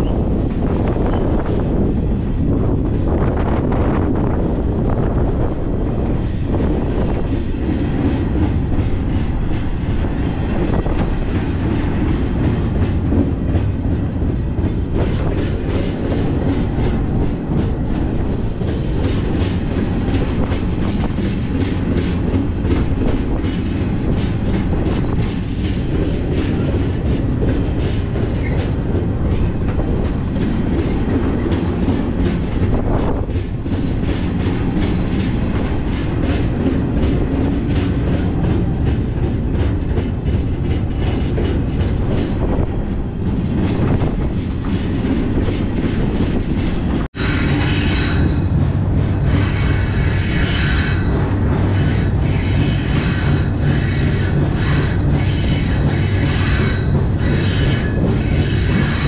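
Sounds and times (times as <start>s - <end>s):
freight train rumble: 0.0s - 59.0s
rail car rattling and knocking: 0.0s - 59.0s
train wheels clicking: 0.0s - 59.0s.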